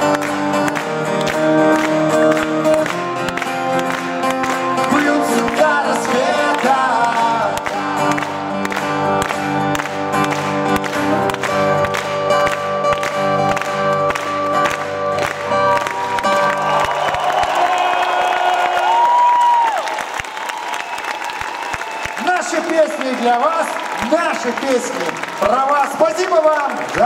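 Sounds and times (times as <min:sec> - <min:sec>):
acoustic guitars strumming: 0:00.0 - 0:17.0
audience applauding and cheering: 0:00.0 - 0:27.0.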